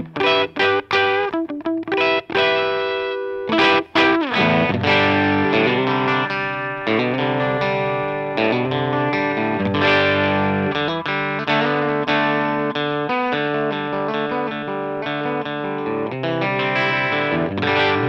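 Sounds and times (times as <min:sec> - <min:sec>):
electric guitar playing: 0:00.0 - 0:18.0.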